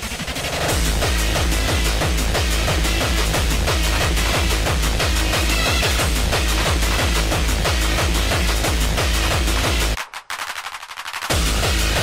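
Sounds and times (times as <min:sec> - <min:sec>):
heavy kick drums pounding: 0:00.7 - 0:10.0.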